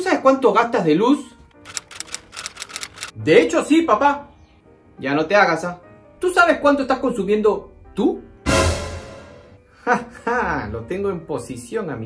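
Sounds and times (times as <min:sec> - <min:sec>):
faint background music: 0:00.0 - 0:12.0
typing clicks: 0:01.6 - 0:03.1.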